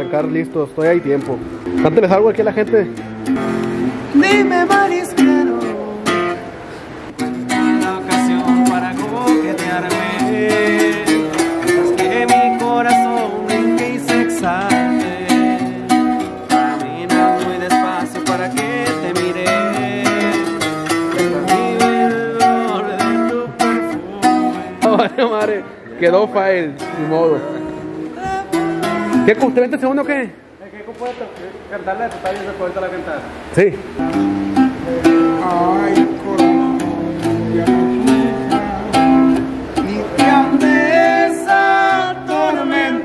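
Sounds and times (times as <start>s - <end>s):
twelve-string guitar playing: 0.0s - 30.6s, 33.3s - 43.0s.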